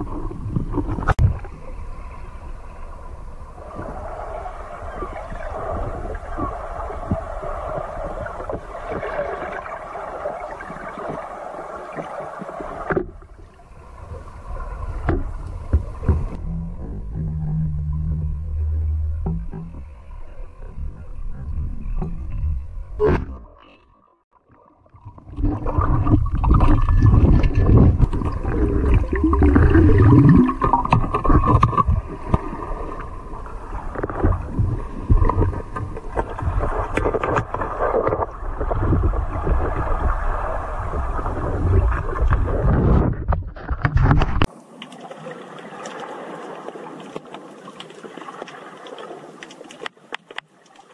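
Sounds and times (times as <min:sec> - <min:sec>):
underwater low rumble: 0:00.0 - 0:44.6
steady low drone: 0:16.3 - 0:23.5.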